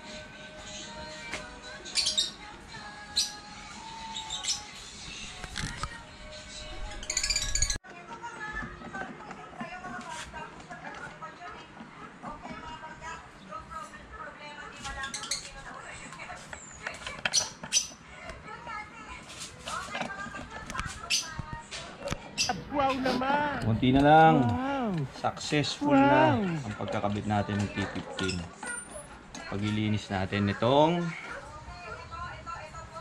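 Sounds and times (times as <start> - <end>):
background music: 0.0 - 9.2, 22.6 - 28.3
indistinct voices: 20.0 - 33.0.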